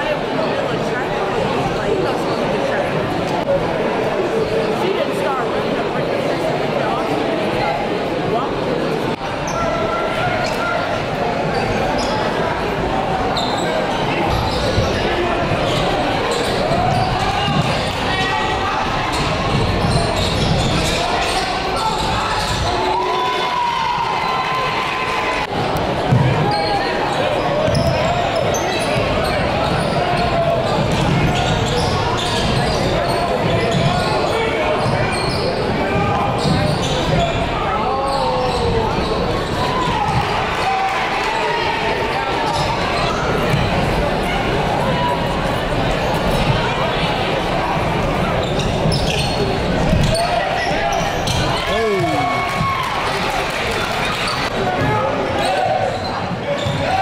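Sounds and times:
voices of players and crowd: 0.0s - 57.0s.

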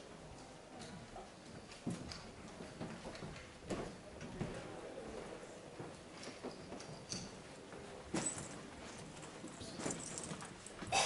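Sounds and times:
footsteps and shuffles: 0.0s - 11.0s.

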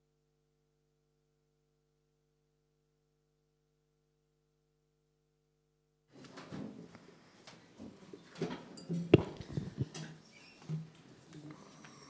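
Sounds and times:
scattered rustles and ticks: 9.2s - 10.1s.

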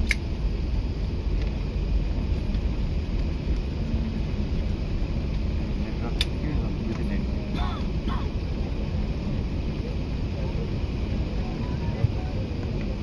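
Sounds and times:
low rumble in aircraft cabin: 0.0s - 13.0s.

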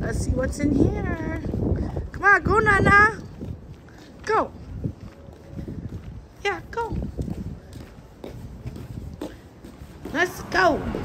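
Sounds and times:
footsteps on concrete: 0.0s - 11.0s
low uneven rumble: 10.0s - 11.0s.

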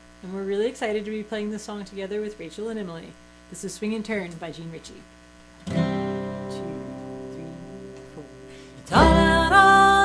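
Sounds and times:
acoustic guitar chord: 5.6s - 10.0s
upright bass: 5.7s - 10.0s
person singing: 6.0s - 10.0s.

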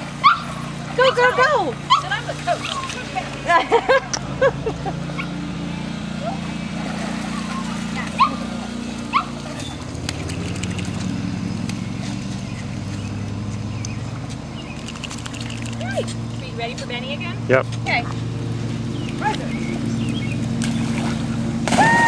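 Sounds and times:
low hum: 0.0s - 22.0s
dog whining: 7.3s - 8.5s.

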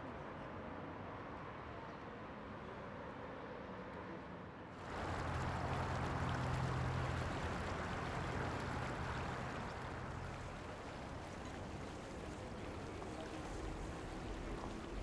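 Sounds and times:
low steady hum: 4.8s - 15.0s
water-like wash of noise: 4.8s - 15.0s.

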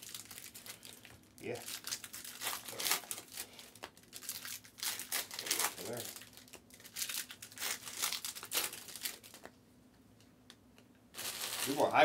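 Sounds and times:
card packaging crinkling and rustling: 0.0s - 9.5s, 11.1s - 12.0s.

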